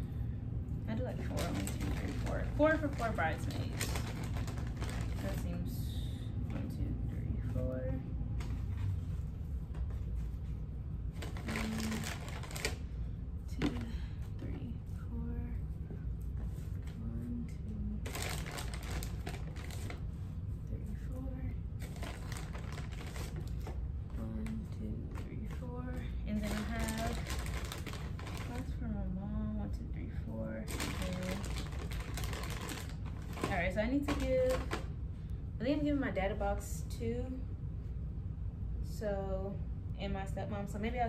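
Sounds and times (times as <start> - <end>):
steady low hum: 0.0 - 41.0
plastic wrappers crinkling: 1.1 - 5.4, 11.2 - 12.9, 18.0 - 20.0, 21.8 - 23.8, 26.4 - 28.7, 30.7 - 34.9.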